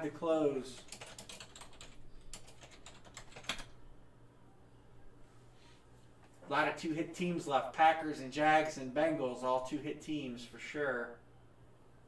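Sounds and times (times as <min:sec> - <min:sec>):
computer keyboard typing: 0:00.8 - 0:03.8.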